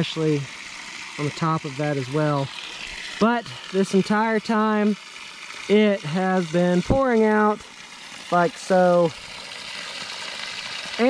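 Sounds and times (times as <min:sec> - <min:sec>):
water pouring from fire hydrant: 0:00.0 - 0:11.0
water splashing onto rocks: 0:02.1 - 0:11.0.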